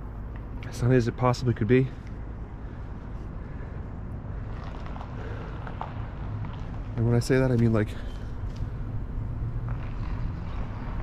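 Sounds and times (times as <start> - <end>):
distant traffic rumble: 0.0 - 11.0.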